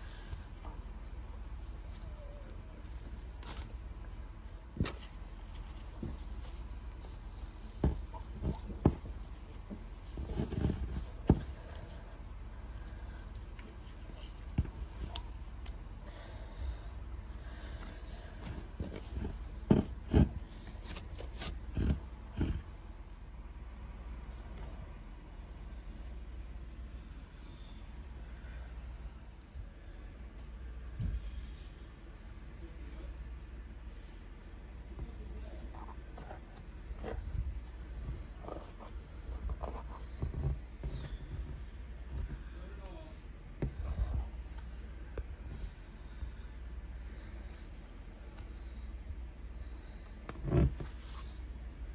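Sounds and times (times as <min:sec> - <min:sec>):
low rumble of handling: 0:00.0 - 0:51.9.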